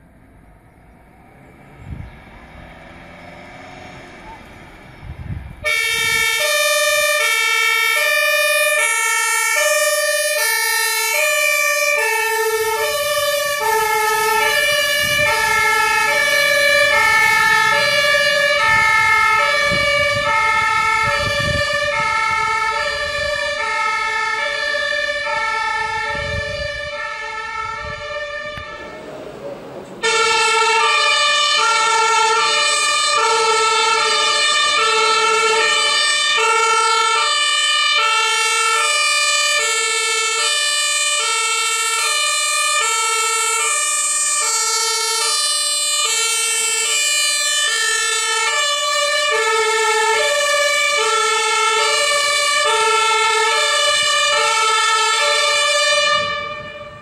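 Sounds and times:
two-tone fire siren: 0:00.0 - 0:57.0.

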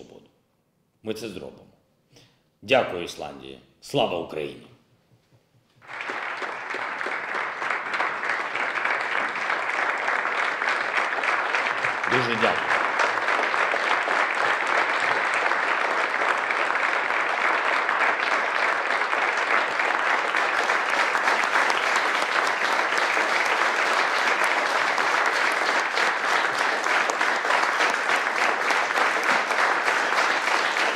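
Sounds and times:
crowd applauding: 0:05.8 - 0:30.9.

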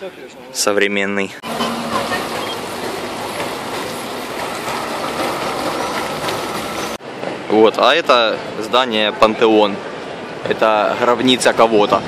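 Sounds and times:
street traffic: 0:00.0 - 0:12.0.

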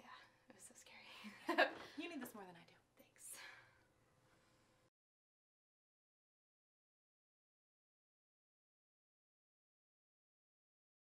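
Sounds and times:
woman laughing: 0:01.4 - 0:02.0.

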